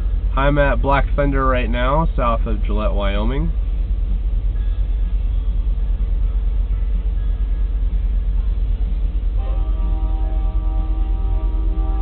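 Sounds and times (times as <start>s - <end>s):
low steady rumble: 0.0s - 12.0s
locomotive air horn chord: 9.3s - 12.0s.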